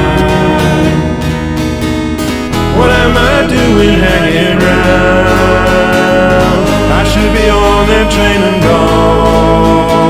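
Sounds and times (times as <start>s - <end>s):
person singing: 0.0s - 1.5s, 2.6s - 10.0s
acoustic guitar: 0.0s - 10.0s.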